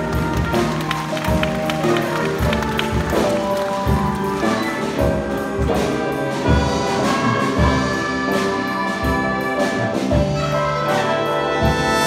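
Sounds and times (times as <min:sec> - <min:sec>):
jazz big band playing: 0:00.0 - 0:12.0.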